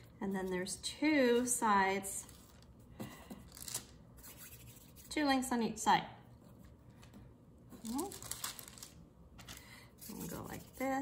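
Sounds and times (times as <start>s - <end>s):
hands rubbing play dough on paper: 4.2s - 5.3s, 10.0s - 11.0s.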